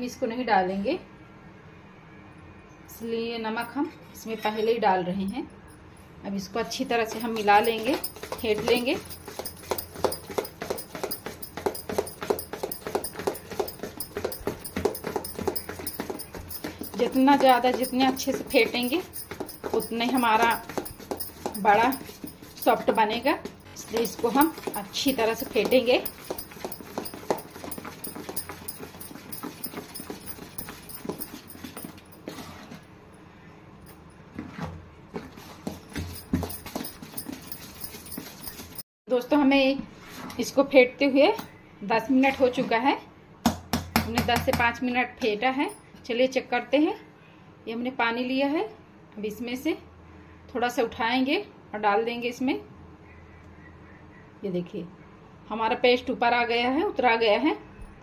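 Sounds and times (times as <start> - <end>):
batter slapping in metal bowl: 7.0 - 32.3.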